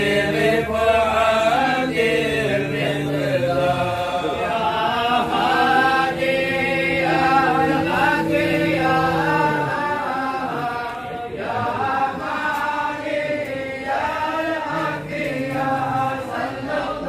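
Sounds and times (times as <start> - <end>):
men chanting together: 0.0 - 17.0.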